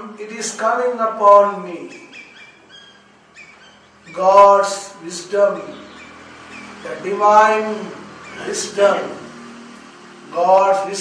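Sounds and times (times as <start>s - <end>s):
small bird chirping: 1.3s - 9.0s.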